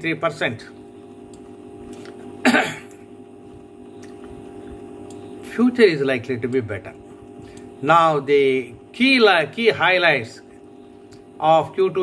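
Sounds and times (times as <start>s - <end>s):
steady low hum: 0.0s - 12.0s
man coughing: 2.4s - 3.0s.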